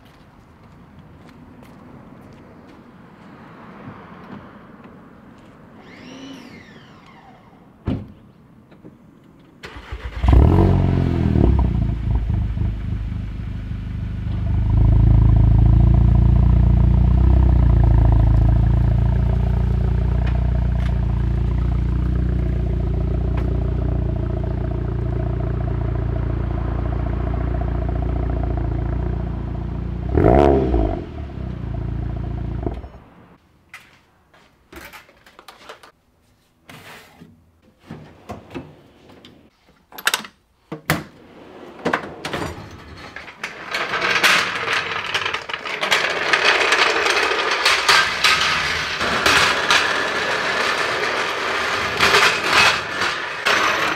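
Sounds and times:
car engine starting and running: 0:09.6 - 0:33.4.

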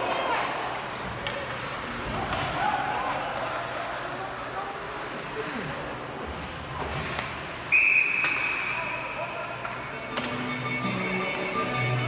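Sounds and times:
referee's whistle blast: 0:07.7 - 0:09.1.

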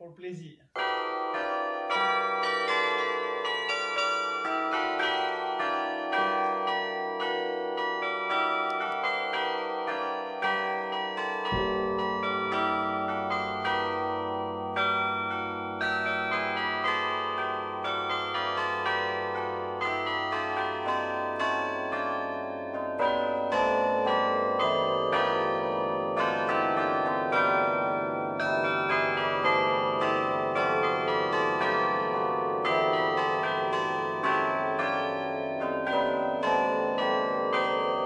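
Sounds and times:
carillon bells playing a melody: 0:00.8 - 0:38.0.

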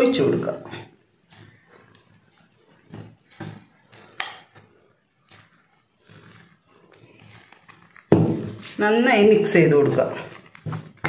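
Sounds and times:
dry flour rustling and scraping: 0:00.0 - 0:11.0.

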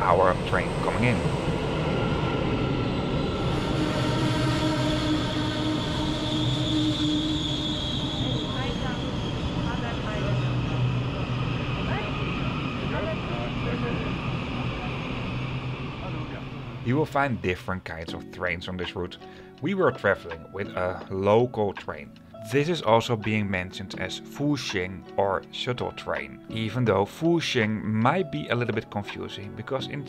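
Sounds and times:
train rumbling to a stop: 0:00.0 - 0:17.6
high train whine: 0:00.0 - 0:18.6.

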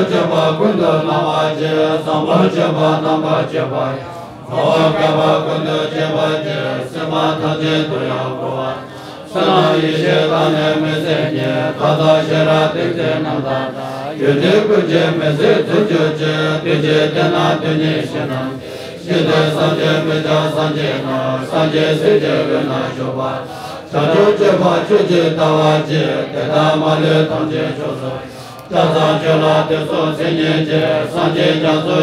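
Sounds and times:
voices droning prayer chant: 0:00.0 - 0:32.0.

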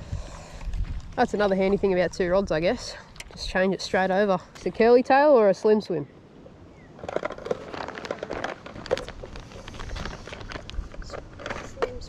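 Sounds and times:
wind rumbling on microphone: 0:00.0 - 0:05.2, 0:06.2 - 0:12.0
plastic packet crinkling: 0:07.0 - 0:11.7.

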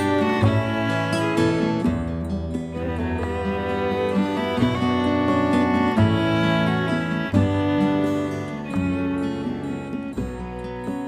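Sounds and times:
bowed strings: 0:00.0 - 0:11.0
guitar: 0:00.0 - 0:11.0.

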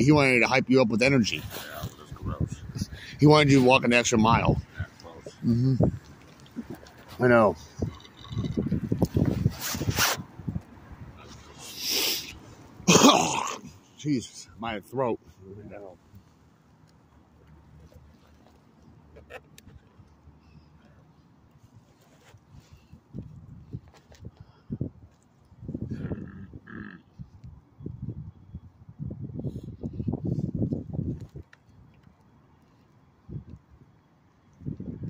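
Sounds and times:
straw squeaking in plastic cup: 0:05.8 - 0:10.2
man coughing and gagging: 0:12.8 - 0:13.8.

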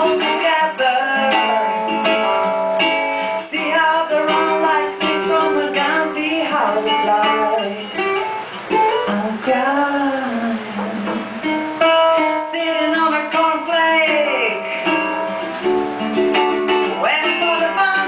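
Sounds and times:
woman singing: 0:00.0 - 0:08.3, 0:08.9 - 0:15.5, 0:16.8 - 0:18.0
strummed ukulele: 0:00.0 - 0:18.0.

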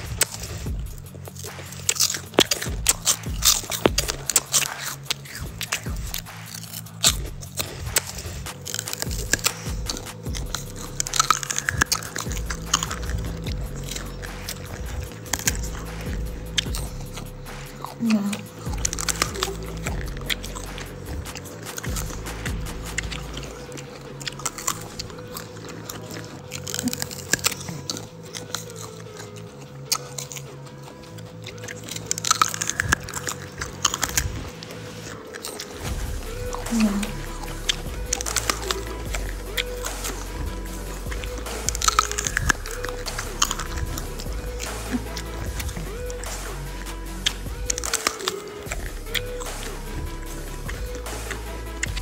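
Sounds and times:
crunchy food being chewed: 0:00.0 - 0:52.0
soft background music: 0:00.0 - 0:52.0.

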